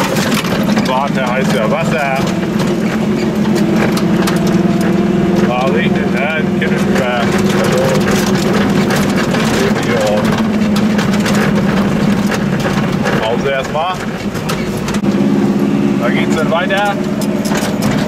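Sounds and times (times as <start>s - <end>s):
knocks and rattles from road: 0.0s - 18.0s
small car engine droning: 0.0s - 18.0s.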